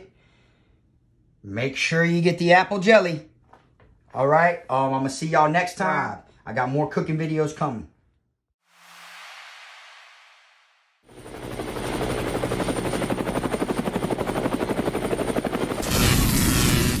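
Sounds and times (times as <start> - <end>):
soft whoosh: 8.7 - 11.0.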